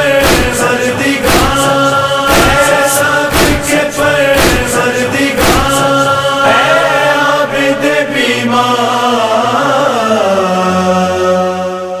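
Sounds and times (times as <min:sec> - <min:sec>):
hummed vocal drone: 0:00.0 - 0:12.0
melodic voice chanting: 0:00.0 - 0:12.0.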